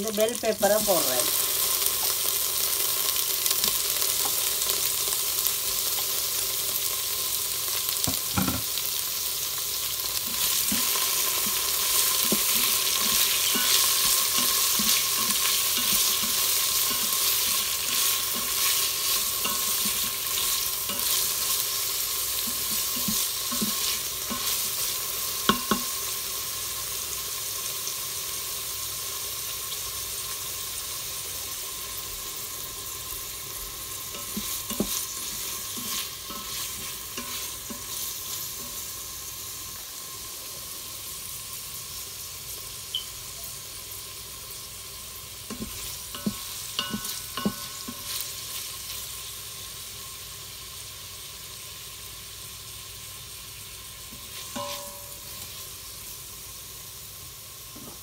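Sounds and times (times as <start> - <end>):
food sizzling in hot oil: 0.0 - 58.0
wooden spatula scraping a pot: 10.2 - 25.9, 34.1 - 38.8.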